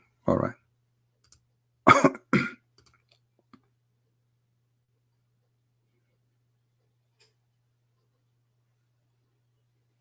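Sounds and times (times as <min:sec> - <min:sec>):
man coughing: 0:01.9 - 0:02.7.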